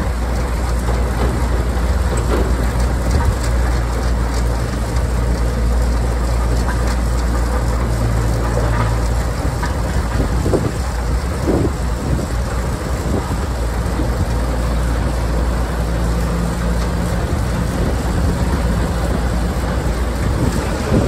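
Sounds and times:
tractor engines droning: 0.0 - 21.0.

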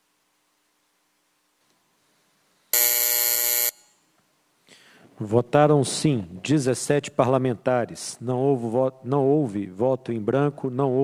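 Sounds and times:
harsh low buzzer: 2.7 - 4.0.

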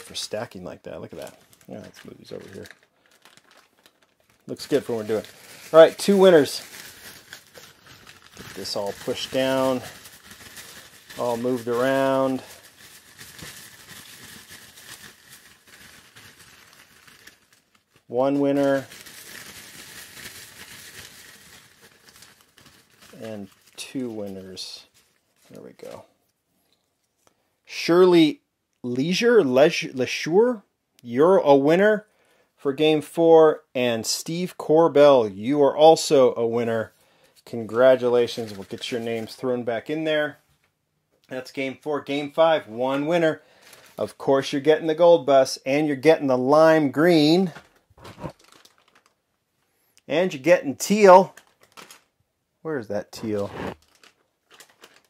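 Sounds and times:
paper slips rustling: 1.0 - 26.0, 37.6 - 40.3, 53.0 - 55.0
plastic bag crinkling: 1.1 - 26.0, 37.8 - 39.4, 41.5 - 44.2, 47.0 - 49.3, 50.8 - 52.2, 53.2 - 55.0.

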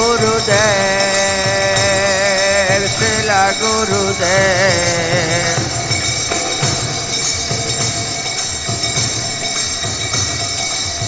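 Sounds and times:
person singing: 0.0 - 5.8
bells and hand cymbals ringing: 0.0 - 11.0
irregular drumbeats: 0.0 - 11.0.

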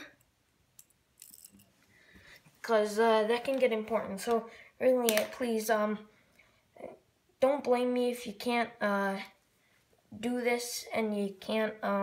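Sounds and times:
plastic pen parts clicking: 5.0 - 5.4.

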